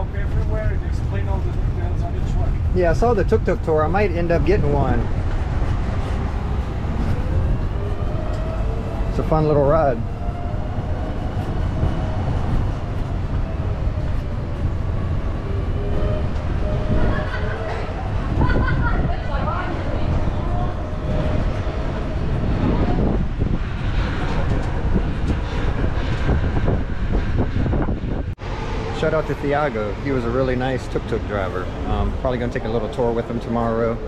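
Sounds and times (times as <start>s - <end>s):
wheels rumbling on stone street: 0.0s - 34.0s.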